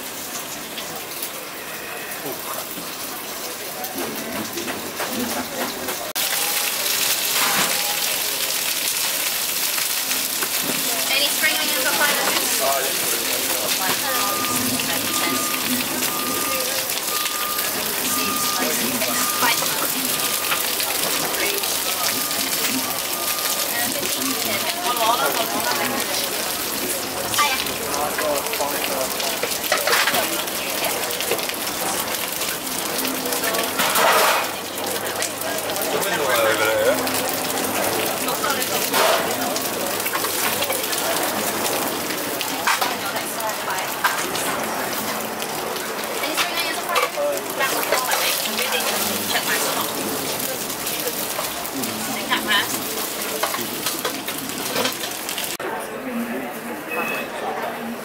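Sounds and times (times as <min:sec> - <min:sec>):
dumplings sizzling in oil: 0:06.0 - 0:55.6
short repeated beep: 0:14.1 - 0:20.6, 0:56.9 - 0:57.3.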